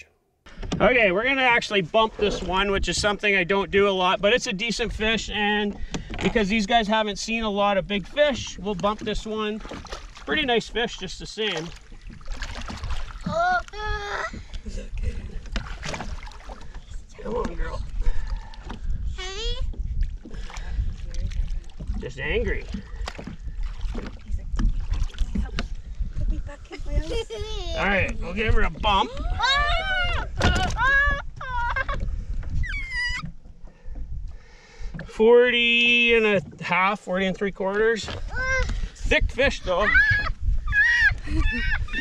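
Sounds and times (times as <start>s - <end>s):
water lapping against boat: 0.5s - 42.0s
wind rumble on microphone: 11.9s - 35.1s, 38.1s - 42.0s
child squealing: 29.2s - 31.9s, 32.6s - 33.3s, 39.8s - 42.0s.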